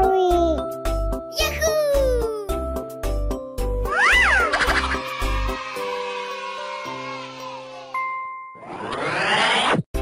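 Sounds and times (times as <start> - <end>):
rising whoosh: 8.6 - 9.9.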